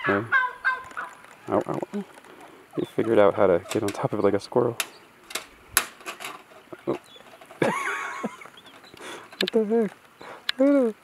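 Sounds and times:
bird feet tapping on wooden roof: 0:04.8 - 0:10.6.

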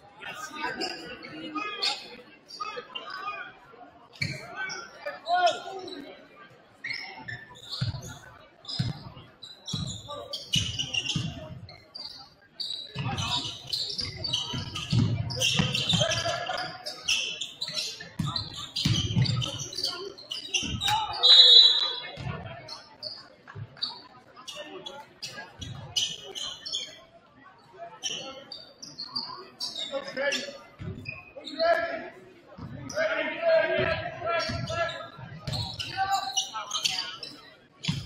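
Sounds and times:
basketball bouncing on wooden floor: 0:14.0 - 0:16.2.

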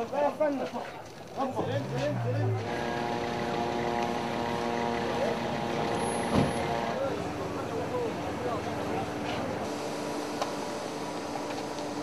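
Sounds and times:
crowd voices: 0:00.8 - 0:09.7.

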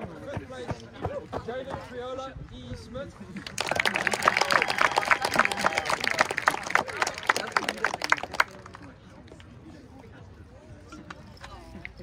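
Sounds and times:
crowd clapping and cheering: 0:03.4 - 0:08.9.

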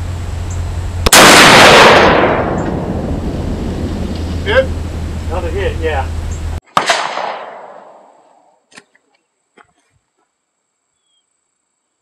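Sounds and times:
rifle shot: 0:01.0 - 0:04.4, 0:06.7 - 0:08.2.

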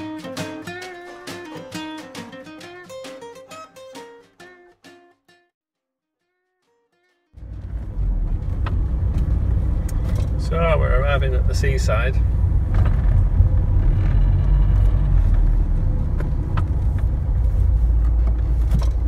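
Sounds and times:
strummed guitar song: 0:00.0 - 0:05.5
car cabin rumble: 0:07.4 - 0:19.0.

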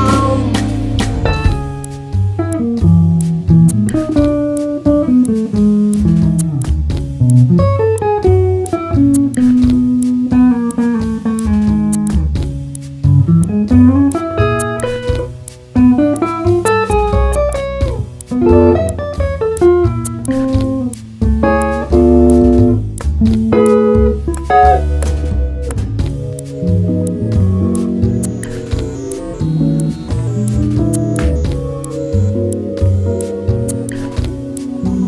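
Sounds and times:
bass line: 0:00.0 - 0:35.0
electric guitar melodic runs: 0:00.0 - 0:35.0
light percussion ticks: 0:00.0 - 0:35.0.

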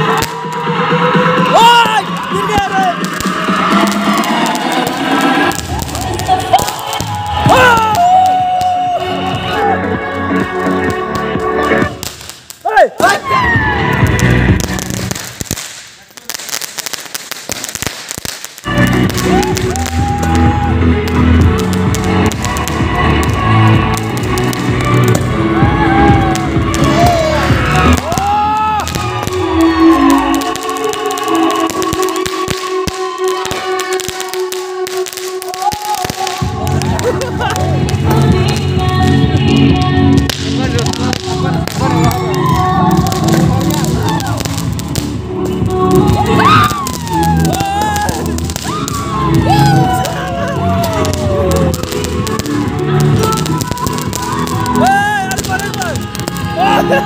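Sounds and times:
loud music from loudspeaker: 0:00.0 - 0:12.1, 0:13.0 - 0:15.2, 0:18.7 - 0:57.0
fireworks crackling and popping: 0:00.0 - 0:57.0.

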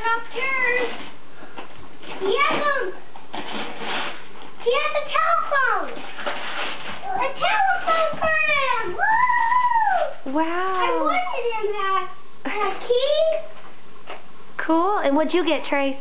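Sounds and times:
wrapping paper tearing and rustling: 0:00.3 - 0:01.2, 0:02.0 - 0:08.9
young child squealing: 0:08.9 - 0:10.3.

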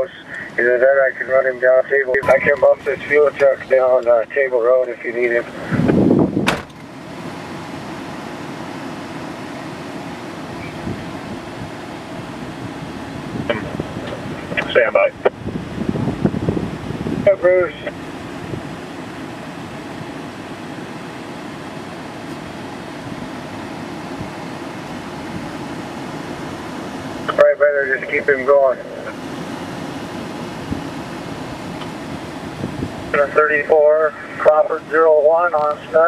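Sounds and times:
vehicle rumble and hiss: 0:00.0 - 0:36.0
wind buffeting microphone: 0:05.6 - 0:06.6, 0:10.6 - 0:11.8, 0:12.4 - 0:18.9, 0:30.2 - 0:33.2.

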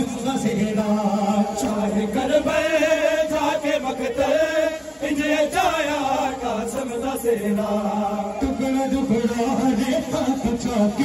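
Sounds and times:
man chanting a lament: 0:00.0 - 0:11.0.

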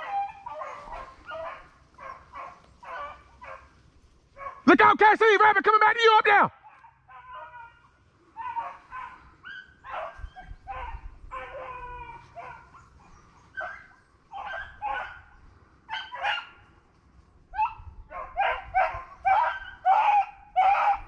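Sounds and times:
hounds baying: 0:00.0 - 0:05.4, 0:06.3 - 0:21.0.

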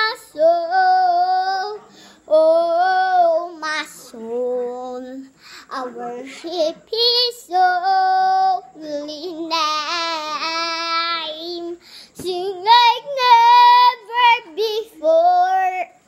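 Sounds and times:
girl singing unaccompanied: 0:00.0 - 0:16.0.

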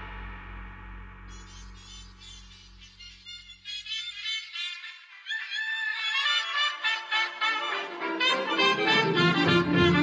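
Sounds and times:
jazz band with brass horns: 0:06.5 - 0:10.0.

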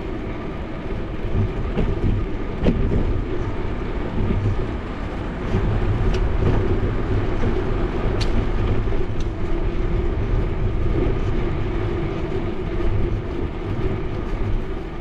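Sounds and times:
road noise: 0:00.0 - 0:15.0
wind rumble on microphone: 0:00.0 - 0:15.0.

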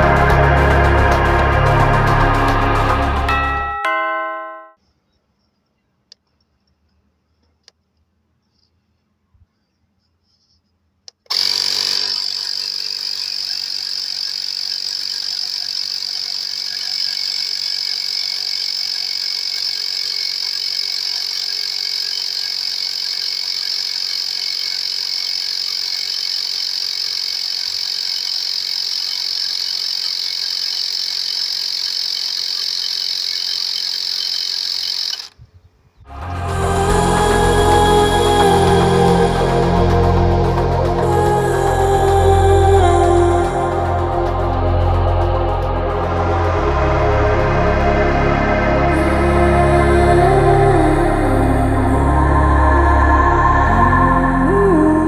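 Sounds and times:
tyre inflator compressor buzzing: 0:11.2 - 0:35.4.

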